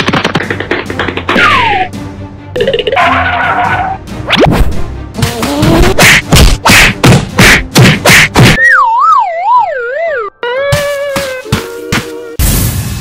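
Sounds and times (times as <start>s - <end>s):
cartoon thumps: 4.3s - 12.4s.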